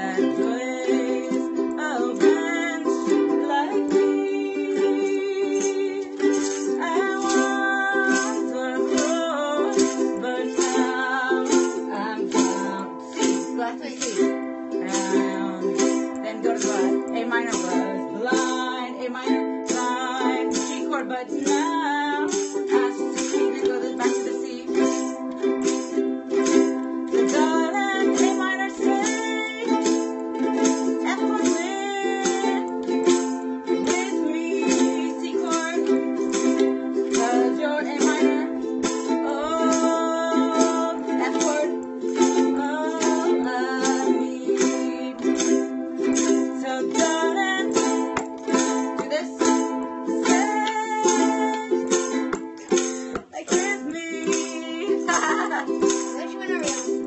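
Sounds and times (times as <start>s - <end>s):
ukuleles strumming chords: 0.0s - 57.0s
woman singing: 0.0s - 57.0s.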